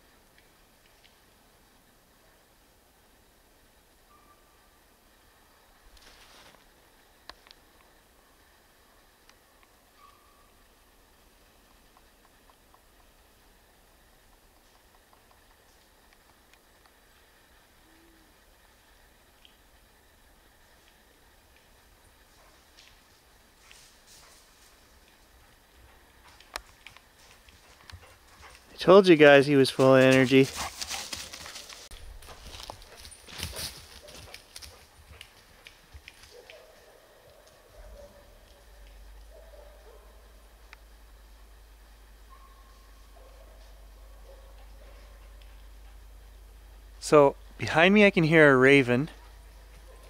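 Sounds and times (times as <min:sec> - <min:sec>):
faint high chirps: 0:04.0 - 0:04.8
dog running through dry leaves: 0:29.7 - 0:35.1
man's voice: 0:47.0 - 0:49.1.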